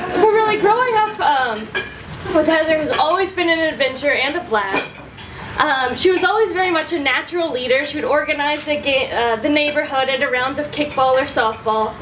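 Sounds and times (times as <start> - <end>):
dishes and cutlery clinking: 0.0 - 11.9
woman giving a speech: 0.0 - 12.0.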